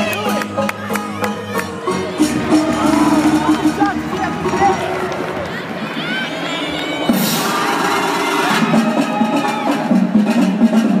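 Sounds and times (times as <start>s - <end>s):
music over arena speakers: 0.0s - 11.0s.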